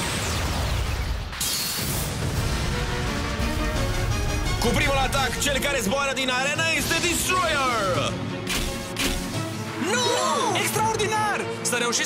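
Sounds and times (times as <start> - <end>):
dramatic soundtrack music: 0.0 - 12.0.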